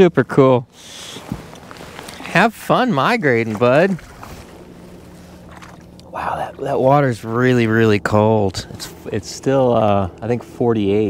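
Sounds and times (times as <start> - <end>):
low steady hum: 0.0 - 11.0
water lapping against kayak: 0.7 - 8.0
small splashes or knocks: 3.4 - 6.1.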